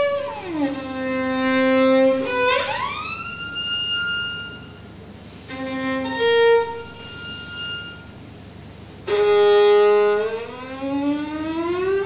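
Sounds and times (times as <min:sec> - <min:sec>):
solo violin high bowed note: 0:00.0 - 0:04.9, 0:05.5 - 0:08.2, 0:09.0 - 0:12.0.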